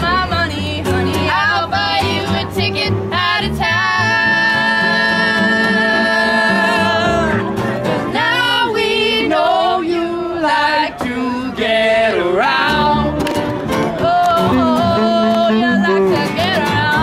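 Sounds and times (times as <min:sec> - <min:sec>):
woman singing: 0:00.0 - 0:07.4, 0:13.9 - 0:17.0
upright bass: 0:00.0 - 0:09.1, 0:10.7 - 0:17.0
guitar: 0:00.0 - 0:17.0.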